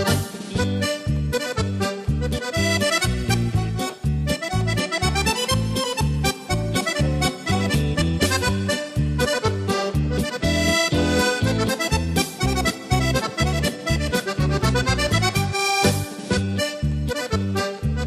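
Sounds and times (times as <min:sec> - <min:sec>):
accordion playing lively tune: 0:00.0 - 0:18.0
rhythm backing track bass beat: 0:00.0 - 0:18.0.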